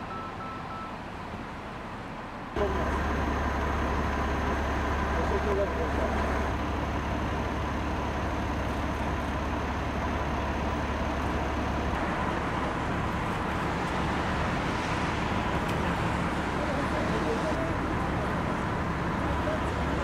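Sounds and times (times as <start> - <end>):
cars on a wet street: 0.0 - 20.0
low engine hum: 0.0 - 20.0.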